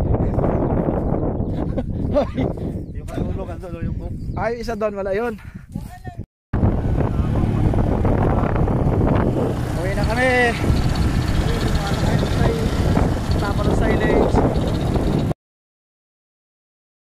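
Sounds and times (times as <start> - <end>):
vehicle rumbling on gravel: 6.6 - 15.4
person's voice: 9.7 - 10.7, 11.4 - 14.4.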